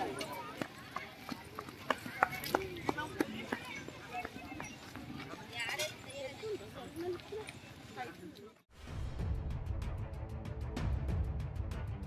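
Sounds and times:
crowd voices: 0.0 - 8.6.

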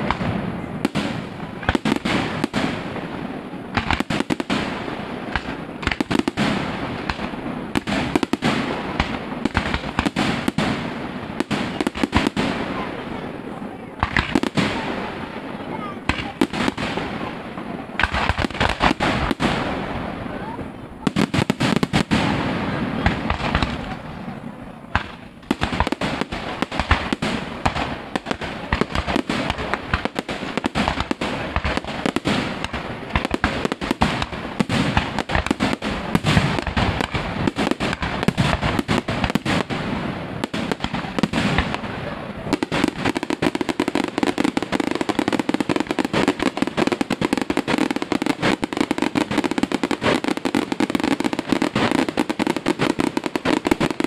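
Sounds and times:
fireworks bangs and crackling: 0.0 - 54.0.

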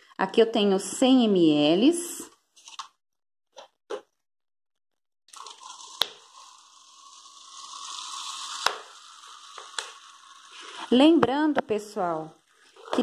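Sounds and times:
liquid pouring into plastic cup: 5.3 - 10.9.

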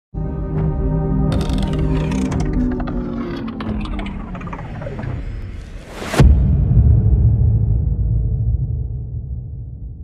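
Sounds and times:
mechanical clicks: 1.3 - 5.3.

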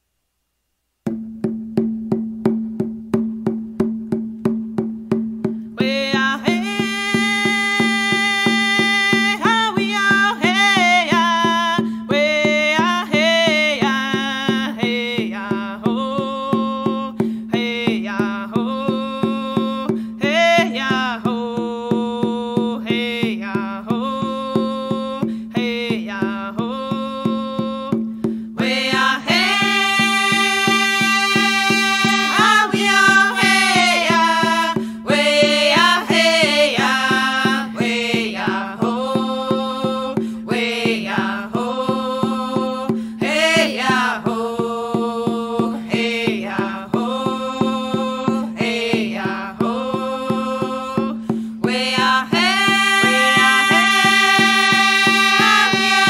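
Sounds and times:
drum beating: 1.1 - 56.0
person singing: 5.8 - 28.0, 28.6 - 56.0.

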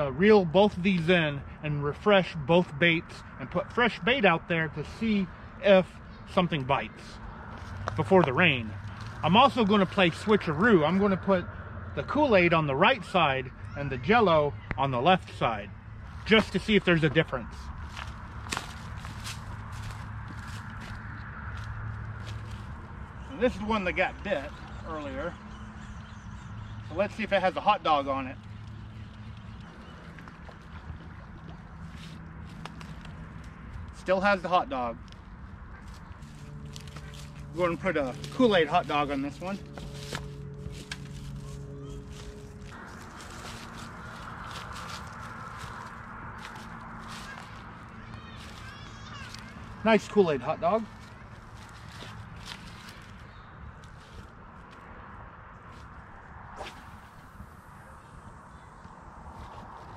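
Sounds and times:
soft footsteps walking: 16.0 - 23.0, 35.8 - 49.8, 50.8 - 54.9
steady low hum: 49.4 - 59.9
steady noise haze: 55.2 - 59.9.

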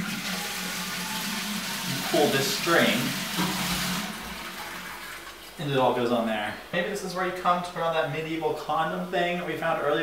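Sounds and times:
toilet flushing: 0.0 - 5.6.

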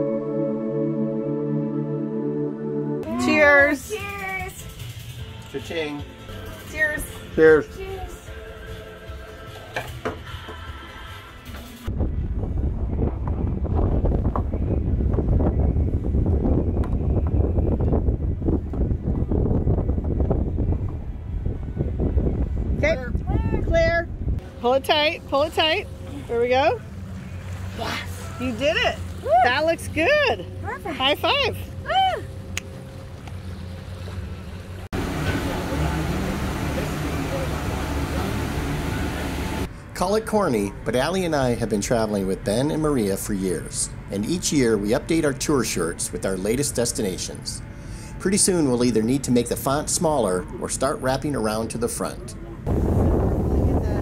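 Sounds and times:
background music: 0.0 - 11.9, 38.0 - 52.6
wind and water rumble: 3.0 - 54.0
wind gusting on microphone: 11.9 - 25.8, 52.6 - 54.0.

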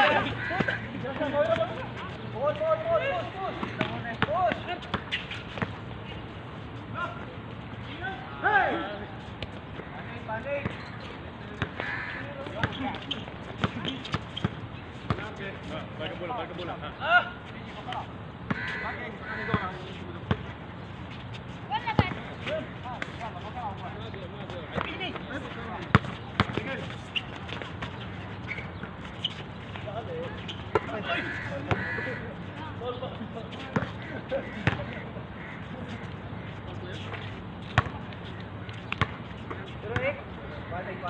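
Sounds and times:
players calling out: 0.0 - 41.0
basketball bouncing on hard court: 34.6 - 34.9.

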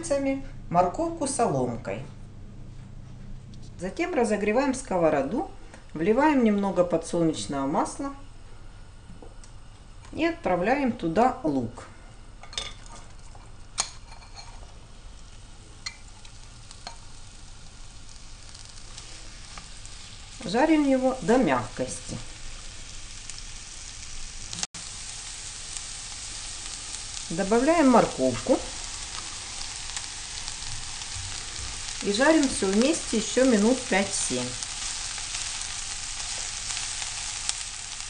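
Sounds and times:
onions sizzling in a frying pan: 12.5 - 38.0.

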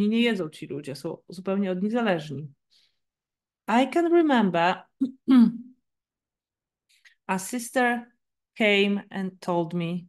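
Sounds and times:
person clearing throat: 5.0 - 5.7.

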